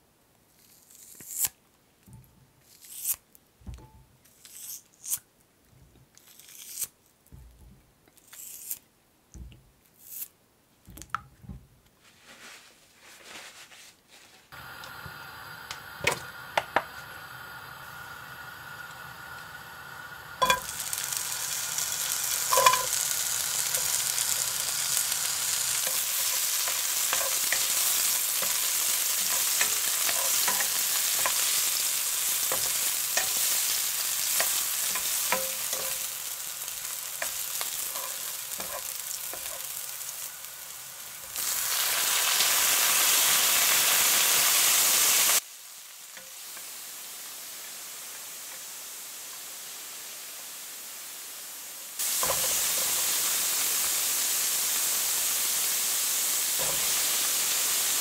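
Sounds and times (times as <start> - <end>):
meat sizzling loudly: 14.5 - 58.0
vegetables sizzling in oil: 14.5 - 58.0.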